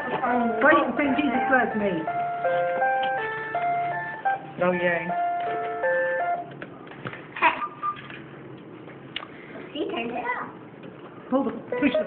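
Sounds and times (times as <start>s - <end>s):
toy keyboard electronic notes: 0.0s - 6.6s, 11.7s - 12.0s.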